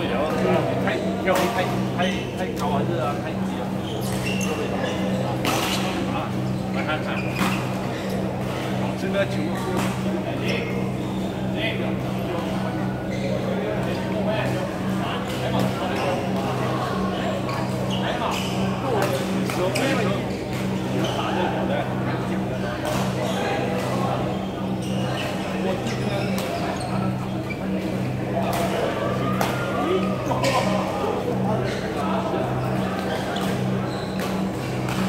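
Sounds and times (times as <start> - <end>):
background chatter: 0.0 - 35.0.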